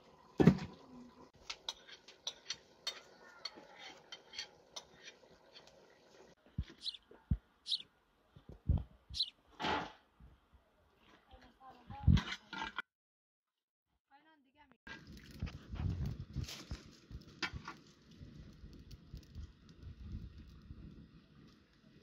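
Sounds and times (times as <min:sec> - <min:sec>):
metal utensils clinking on cookware: 0:01.4 - 0:05.7.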